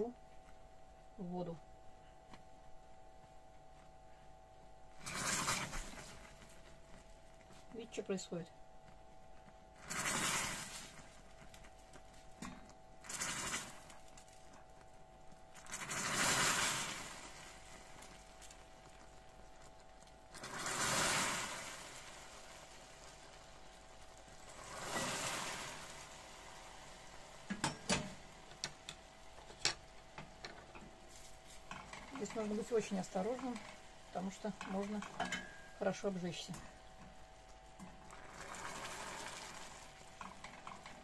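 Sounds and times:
caramel sizzling and spitting: 5.0s - 7.8s, 9.7s - 41.0s
water pouring into caramel: 9.7s - 12.3s, 13.0s - 28.5s, 36.8s - 41.0s.

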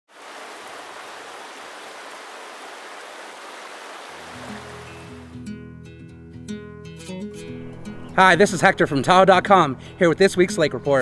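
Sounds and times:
plucked guitar notes: 4.2s - 8.2s
music with held bass notes: 4.2s - 11.0s.

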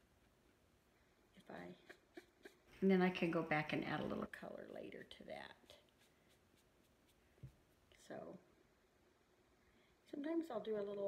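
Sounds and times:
person speaking softly: 1.4s - 2.2s.

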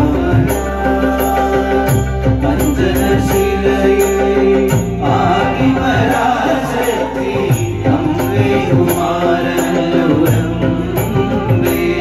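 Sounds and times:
drum: 0.0s - 12.0s
hand cymbals struck: 0.0s - 12.0s
keyboard: 0.0s - 12.0s
men singing in unison: 0.0s - 12.0s.

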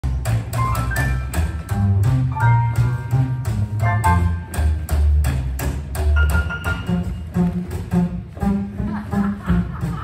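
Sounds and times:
boogie-woogie piano: 0.0s - 10.0s
drums: 0.0s - 10.0s
upright bass: 0.0s - 10.0s.

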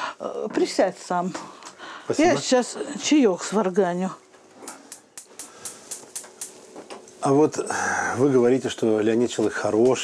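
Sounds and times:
stove spark igniter clicking: 4.7s - 7.0s.

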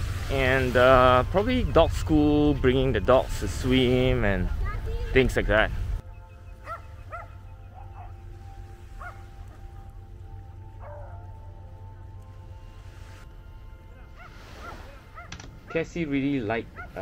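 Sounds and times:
faint background music: 0.0s - 17.0s
distant dogs barking: 6.0s - 17.0s.

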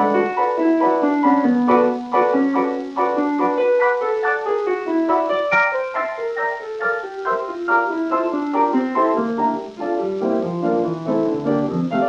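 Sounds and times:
solo piano short chords: 0.0s - 12.0s.

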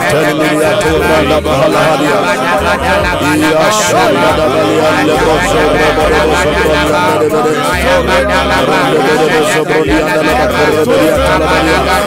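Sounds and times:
men praying aloud: 0.0s - 12.0s.

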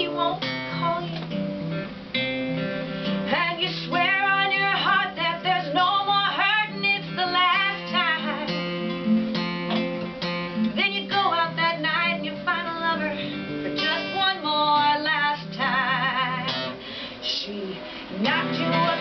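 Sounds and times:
person singing: 0.0s - 1.3s, 3.3s - 8.6s, 10.6s - 19.0s
acoustic guitar strumming: 0.0s - 19.0s.

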